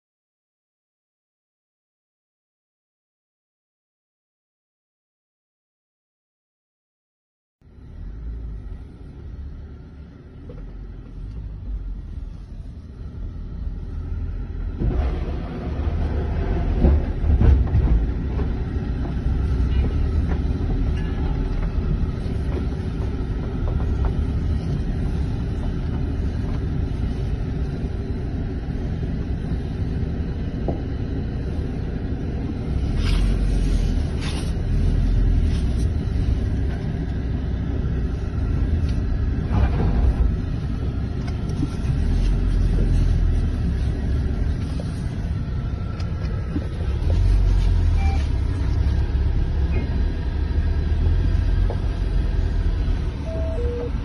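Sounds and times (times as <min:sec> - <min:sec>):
vehicle engine rumble inside cab: 0:07.6 - 0:54.0.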